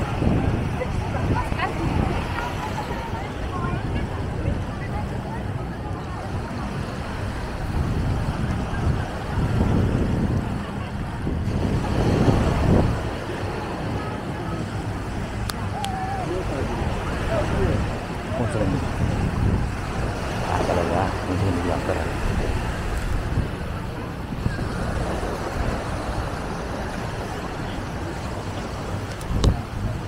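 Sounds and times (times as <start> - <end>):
faint voices: 0.0 - 30.0
small waves washing onto sand: 0.0 - 30.0
wind buffeting microphone: 0.0 - 30.0.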